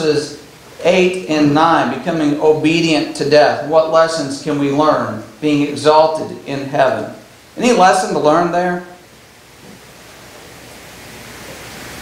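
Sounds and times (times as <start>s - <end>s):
microphone hiss: 0.0s - 12.0s.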